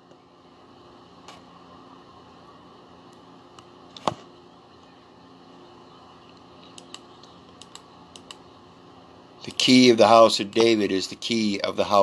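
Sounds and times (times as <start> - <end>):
laptop clicking: 6.2 - 8.4.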